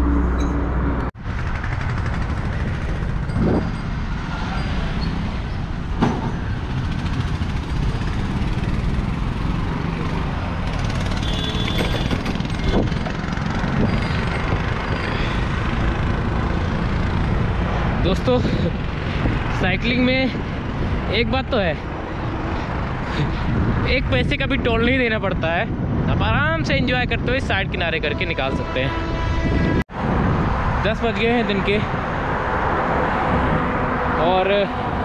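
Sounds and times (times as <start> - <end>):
road and traffic noise: 0.0 - 35.0
wind on microphone: 2.0 - 5.9, 6.5 - 21.1, 21.8 - 35.0.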